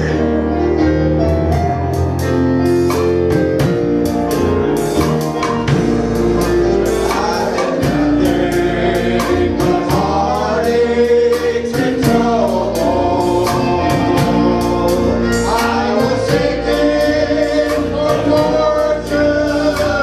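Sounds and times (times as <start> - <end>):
men's vocal group singing gospel: 0.0 - 1.8, 3.2 - 20.0
instrumental accompaniment with beat: 0.0 - 20.0.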